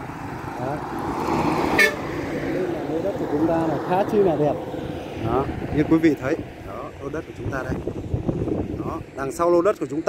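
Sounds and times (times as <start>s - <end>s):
motorbike passing: 0.0s - 9.1s
heavy truck passing: 0.0s - 9.6s
horn beep: 1.8s - 2.0s.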